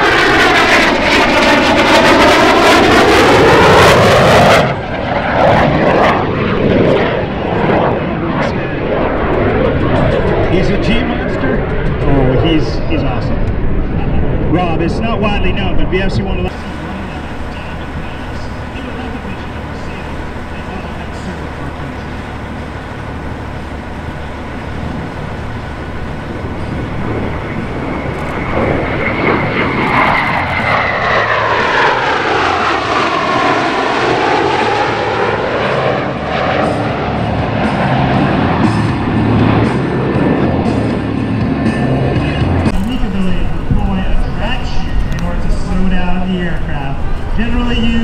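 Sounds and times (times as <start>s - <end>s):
jet fighters flying past: 0.0s - 48.0s.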